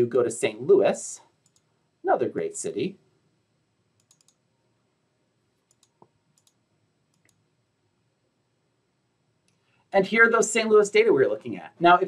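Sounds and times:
computer mouse clicks: 0:01.4 - 0:01.7, 0:04.0 - 0:04.4, 0:05.6 - 0:07.4.

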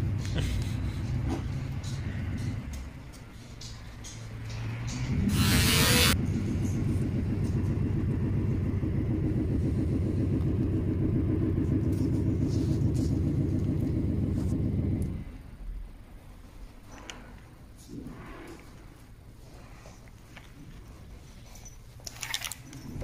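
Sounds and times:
engine rumble: 0:00.0 - 0:23.0.

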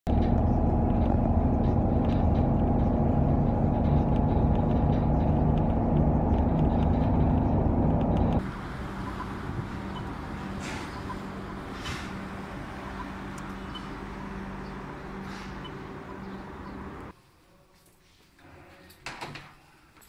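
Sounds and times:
engine and road rumble: 0:00.0 - 0:17.2
outdoor street sound: 0:00.0 - 0:20.0.

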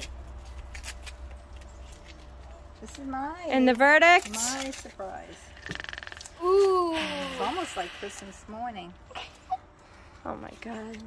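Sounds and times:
low steady rumble: 0:00.0 - 0:11.0.

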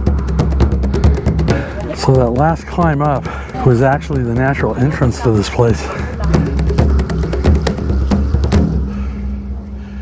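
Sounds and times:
low bass and held notes: 0:00.0 - 0:10.0.

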